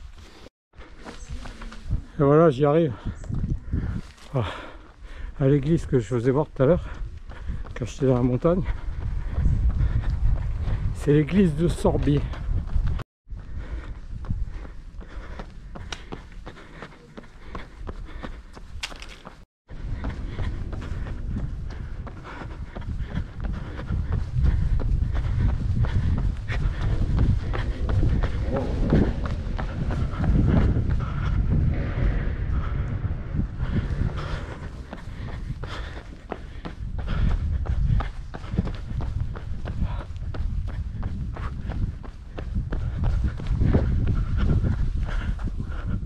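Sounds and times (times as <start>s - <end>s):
running footsteps on pavement: 0.0s - 46.0s
steady low rumble: 2.9s - 18.8s, 19.7s - 46.0s.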